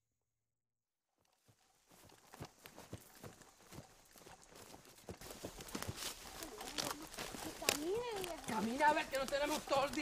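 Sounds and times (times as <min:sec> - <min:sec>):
footsteps in leaf litter: 0:01.4 - 0:10.0.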